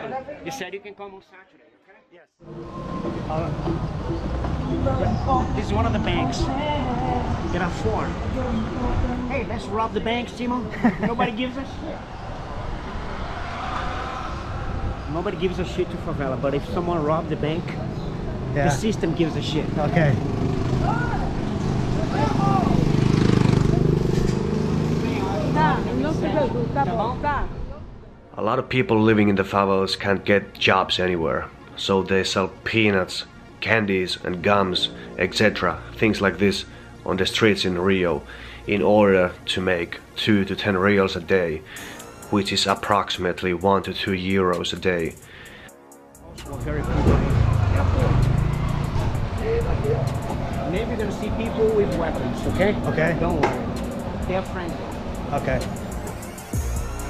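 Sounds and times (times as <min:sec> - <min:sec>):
voices: 0:02.9 - 0:45.3, 0:46.2 - 0:56.7
vehicle engine passing: 0:11.3 - 0:28.2, 0:46.2 - 0:57.0
background music with beat: 0:41.6 - 0:57.0
vehicle engine rumble: 0:46.3 - 0:57.0.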